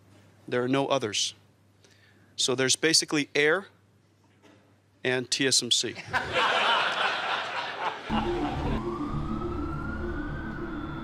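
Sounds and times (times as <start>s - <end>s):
laughter: 6.0s - 8.8s
slow wailing tone: 8.1s - 11.0s.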